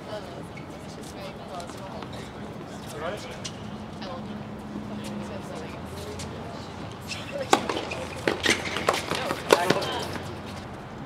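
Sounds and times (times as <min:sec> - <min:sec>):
outdoor background noise: 0:00.0 - 0:11.0
tennis ball impact: 0:07.4 - 0:10.2.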